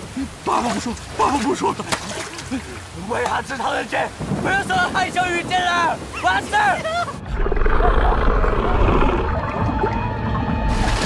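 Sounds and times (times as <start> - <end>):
muffled underwater rumble: 7.2 - 11.0.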